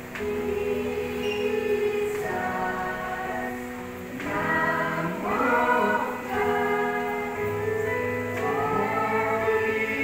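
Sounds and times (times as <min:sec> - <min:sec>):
small group singing a church song: 0:00.0 - 0:10.0.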